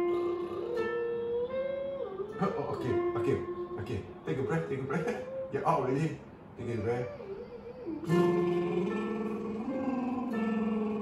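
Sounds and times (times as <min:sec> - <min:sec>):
electronic keyboard chords: 0:00.0 - 0:06.3, 0:08.0 - 0:11.0.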